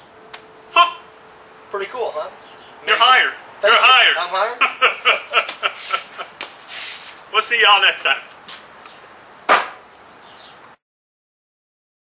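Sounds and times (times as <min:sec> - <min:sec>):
sharp knock: 0:09.5 - 0:09.9.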